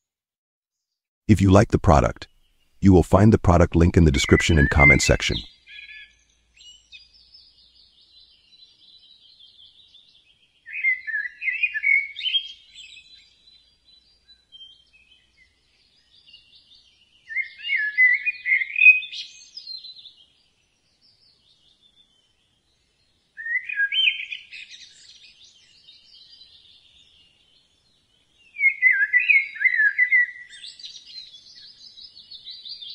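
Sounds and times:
birds singing warbling phrases: 0:01.4 - 0:22.2, 0:23.4 - 0:27.4, 0:28.2 - 0:32.9.

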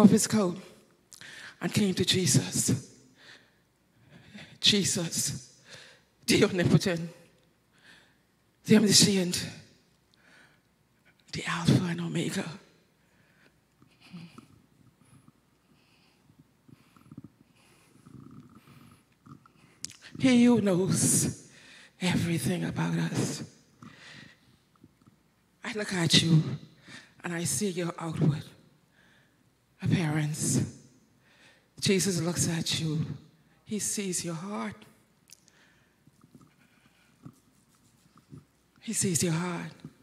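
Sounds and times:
woman speaking into a microphone: 0:00.0 - 0:00.8, 0:01.6 - 0:02.8, 0:06.3 - 0:07.2, 0:08.6 - 0:09.6, 0:11.3 - 0:12.7, 0:20.0 - 0:21.4, 0:22.0 - 0:23.5, 0:25.6 - 0:26.6, 0:27.2 - 0:28.6, 0:29.8 - 0:30.7, 0:31.8 - 0:34.9, 0:38.8 - 0:40.0
breathy mouth noises: 0:13.6 - 0:20.2, 0:23.7 - 0:25.5, 0:35.2 - 0:38.8.

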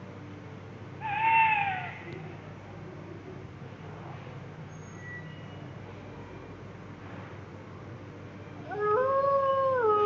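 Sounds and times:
drawn-out animal call: 0:01.0 - 0:02.1.

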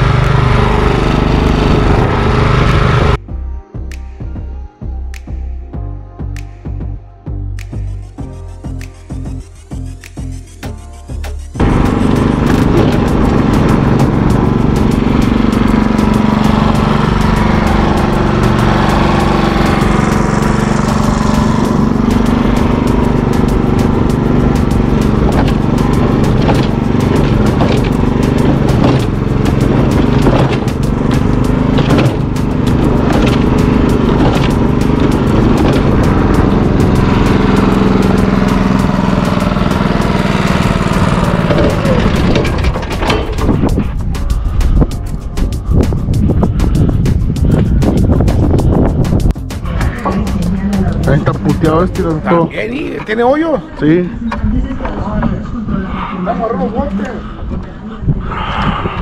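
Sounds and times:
mortar mixer engine running: 0:00.0 - 0:03.2, 0:11.4 - 0:52.3
irregular clicks and knocks: 0:24.6 - 0:36.2, 0:41.2 - 0:43.8.

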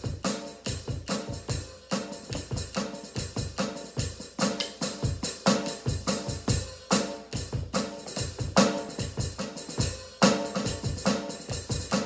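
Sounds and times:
drum kit rock groove: 0:00.0 - 0:12.0.

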